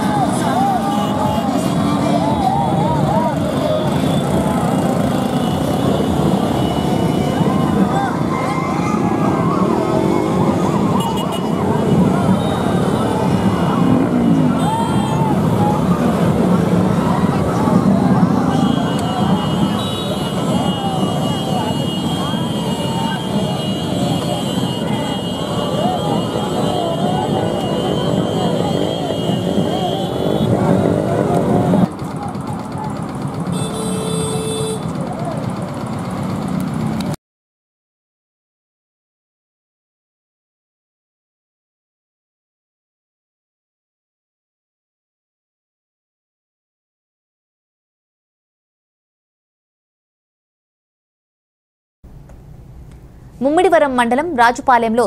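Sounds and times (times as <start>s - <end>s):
crowd shouting and cheering: 0.0s - 33.5s
motorcycle engines rumbling: 0.0s - 37.2s.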